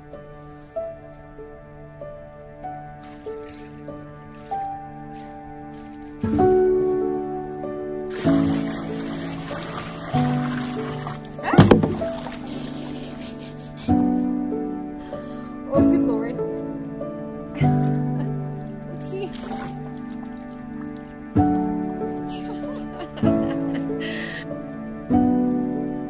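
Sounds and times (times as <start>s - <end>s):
gentle background music: 0.0s - 26.0s
water pouring into bathtub: 8.1s - 13.0s, 18.4s - 22.1s.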